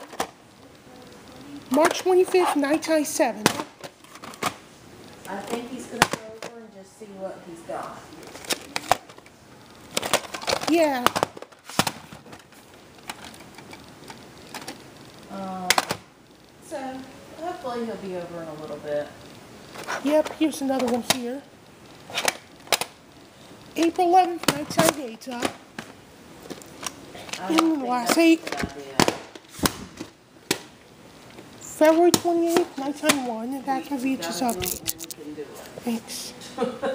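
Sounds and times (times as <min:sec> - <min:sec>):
plastic cassettes clicking on wood: 0:00.0 - 0:00.4, 0:01.7 - 0:04.6, 0:05.2 - 0:06.6, 0:08.2 - 0:09.3, 0:09.9 - 0:14.9, 0:15.7 - 0:16.0, 0:19.8 - 0:21.4, 0:22.0 - 0:23.0, 0:23.7 - 0:30.7, 0:31.3 - 0:33.4.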